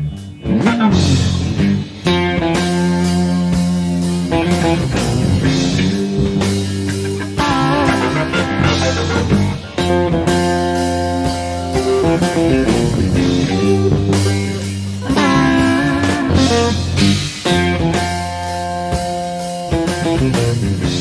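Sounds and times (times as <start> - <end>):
electric guitar: 0.0 - 21.0
live rock band playing blues: 0.0 - 21.0.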